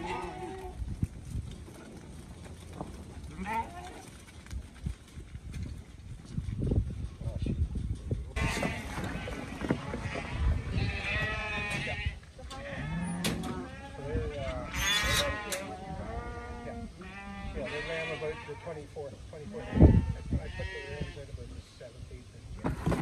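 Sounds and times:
sheep bleating: 0.0s - 0.8s, 3.3s - 4.1s, 8.4s - 18.8s, 19.5s - 21.2s.

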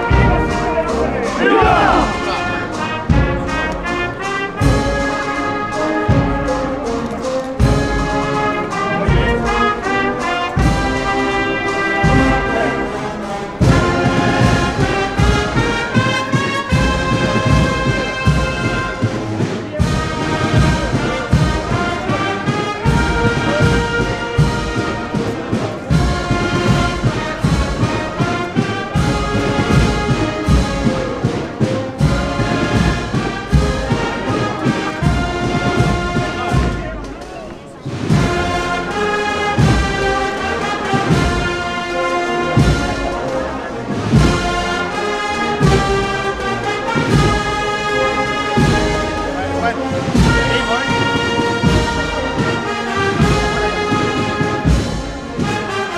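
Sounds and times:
sustained brass: 0.0s - 19.1s
steady drumbeat: 0.0s - 55.9s.

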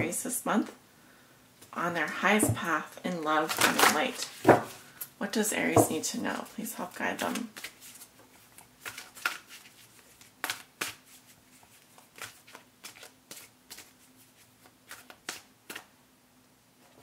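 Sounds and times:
cards being shuffled: 7.2s - 15.9s.

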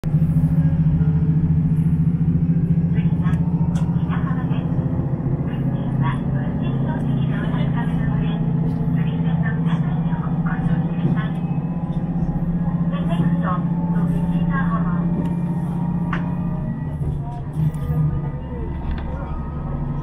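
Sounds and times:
diesel railcar engine drone: 0.0s - 20.0s.

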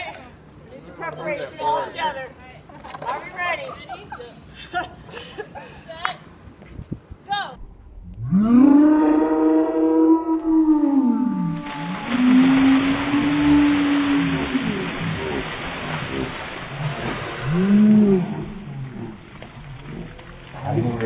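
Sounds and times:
water splashing on ground: 11.4s - 21.0s.

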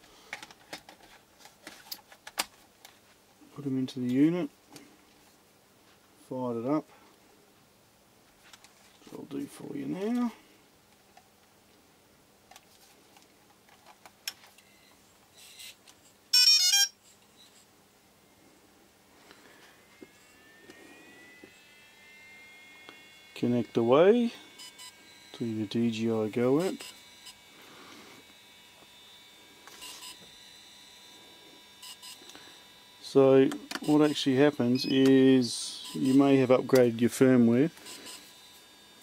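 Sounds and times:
faint electrical hum and whine: 0.0s - 39.0s.

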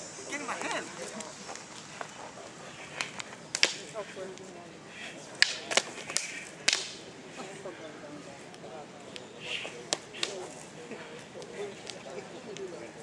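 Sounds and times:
rattan sticks clacking: 2.8s - 4.4s, 5.4s - 7.0s, 9.1s - 10.6s.

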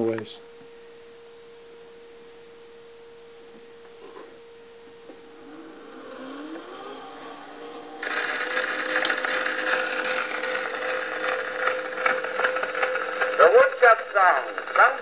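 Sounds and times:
recorded spoken announcement: 0.0s - 0.4s, 13.2s - 15.0s
record surface hiss and crackle: 0.0s - 15.0s
faint hum with rising glide: 0.7s - 14.8s.

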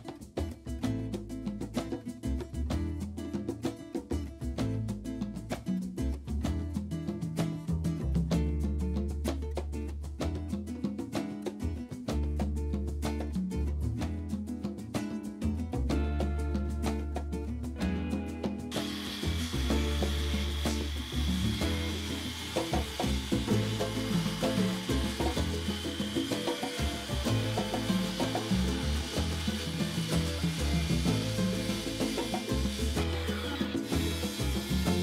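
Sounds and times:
background music: 17.8s - 35.0s
circular saw cutting wood: 18.7s - 35.0s.

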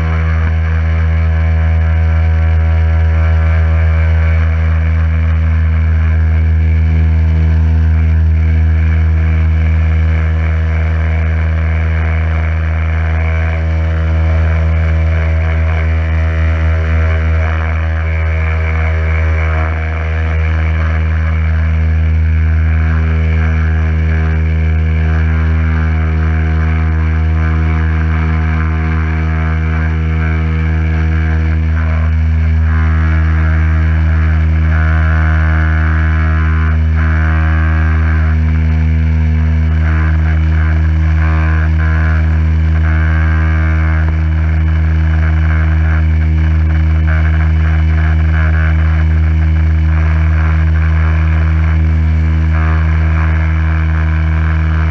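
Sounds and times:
pressure washer motor hum: 0.0s - 54.9s.

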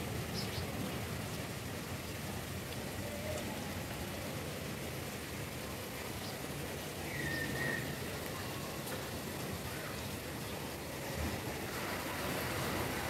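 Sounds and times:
steady rain falling: 0.0s - 13.0s.

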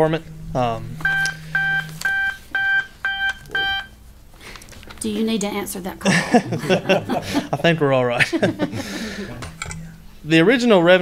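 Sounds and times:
phone ringtone beeps: 1.0s - 4.0s.

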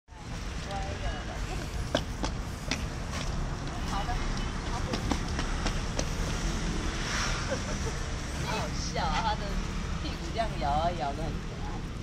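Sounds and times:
traffic rumble: 0.1s - 12.0s
wind: 0.1s - 12.0s.

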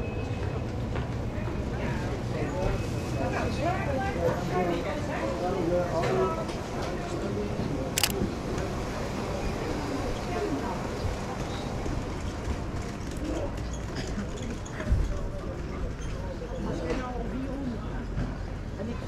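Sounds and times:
chatter of passers-by: 0.0s - 19.0s
camera shutter click: 8.0s - 8.2s.

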